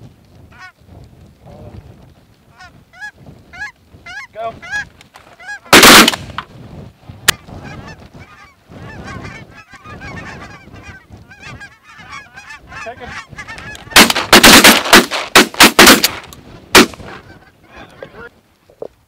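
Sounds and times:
geese honking: 2.5s - 6.2s, 7.6s - 15.0s, 17.0s - 18.3s
sharp crack: 5.0s - 6.5s, 13.5s - 17.2s
shotgun blasts: 5.7s - 6.4s, 13.9s - 17.1s.

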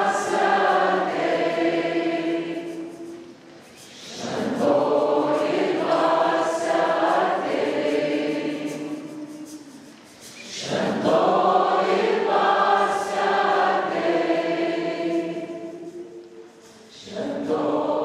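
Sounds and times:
congregation singing worship song: 0.0s - 18.0s.

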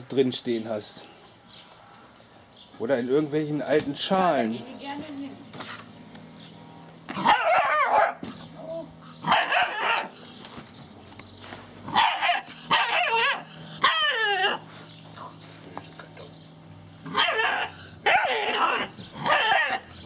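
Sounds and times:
puppies yelping and whining: 7.2s - 10.4s, 11.9s - 15.5s, 17.0s - 20.0s.

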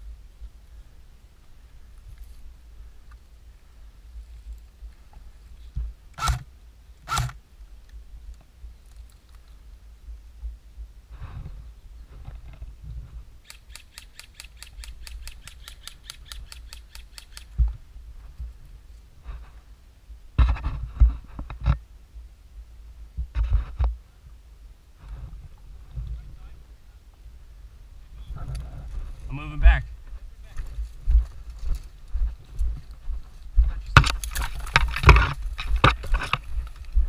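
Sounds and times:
airsoft rifle shots: 6.2s - 6.5s, 7.1s - 7.4s.

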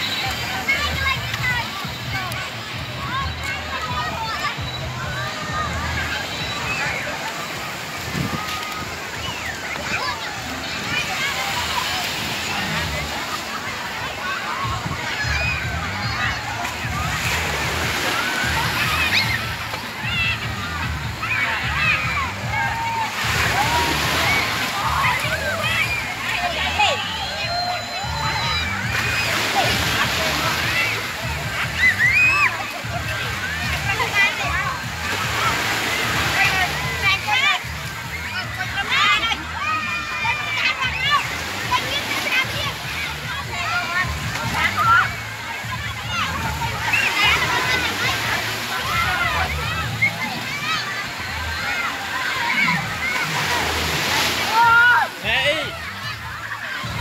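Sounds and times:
water sloshing and splashing: 0.0s - 27.4s, 28.0s - 57.0s
children shouting and chattering: 0.0s - 57.0s.

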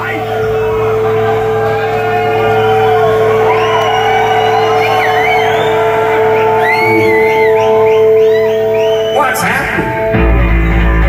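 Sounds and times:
amplifier hum: 0.0s - 11.0s
audience cheering and whistling: 0.0s - 11.0s
steady held note: 0.0s - 11.0s.

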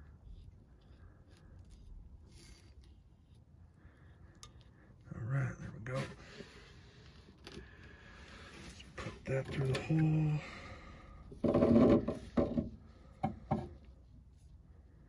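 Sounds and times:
metal pipe clicking and rubbing: 4.2s - 5.0s
man's voice: 9.0s - 10.6s.

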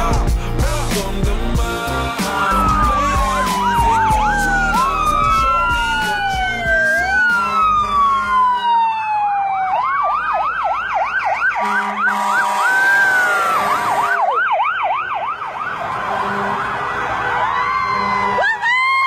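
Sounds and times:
emergency vehicle sirens: 1.6s - 19.0s.

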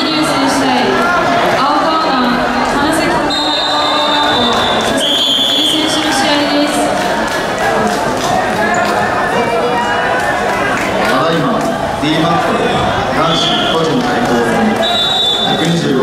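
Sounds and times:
overlapping voices and shouts: 0.0s - 16.0s
long whistle blast: 3.3s - 5.8s, 14.8s - 15.6s.

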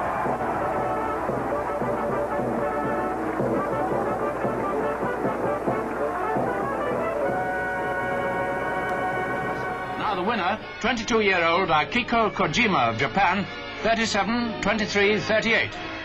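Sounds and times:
record crackle: 0.0s - 10.0s
brass band playing chords: 0.0s - 10.8s.

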